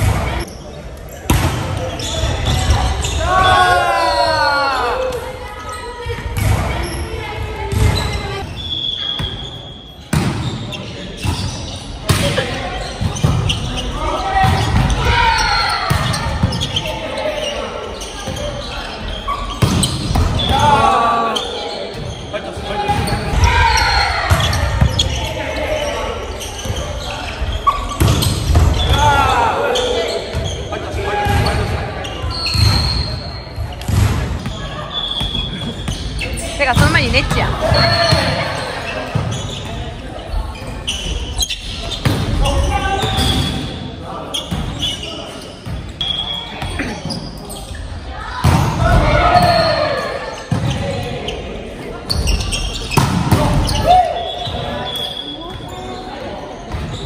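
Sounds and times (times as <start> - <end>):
shoe squeaks on floor: 0.2 - 3.7, 4.8 - 48.1, 49.2 - 57.0
players shouting: 2.0 - 5.3, 13.7 - 18.0, 20.4 - 26.6
volleyball hits echoing: 48.3 - 49.8.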